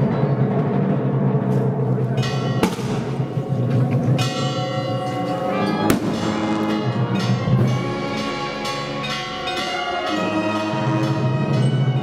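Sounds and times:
church bells ringing: 2.0 - 12.0
brass band playing slow march: 2.7 - 12.0.

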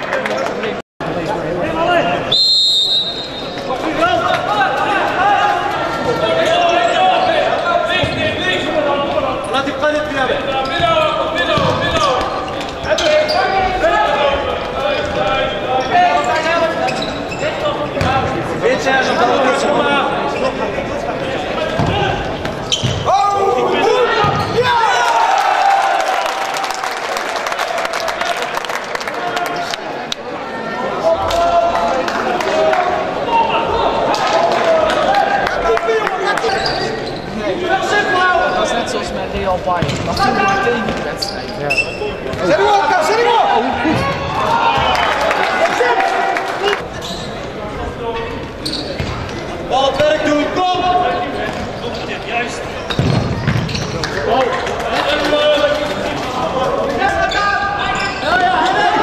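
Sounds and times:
players shouting: 18.6 - 41.0, 42.2 - 46.9, 54.1 - 59.0
ball kicked and bouncing: 52.9 - 53.8.

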